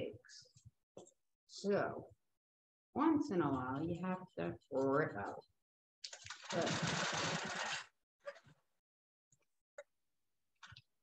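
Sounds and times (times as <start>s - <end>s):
quilting machine stitching: 6.3s - 7.9s.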